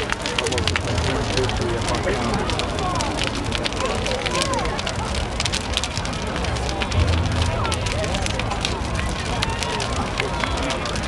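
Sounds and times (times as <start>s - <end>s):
fire crackling and popping: 0.0s - 11.0s
low rumble: 5.0s - 11.0s.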